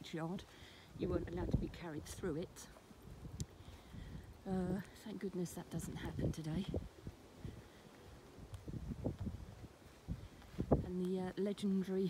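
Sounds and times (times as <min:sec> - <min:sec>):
wind on microphone: 0:00.9 - 0:11.1
microphone handling bumps: 0:08.6 - 0:10.9.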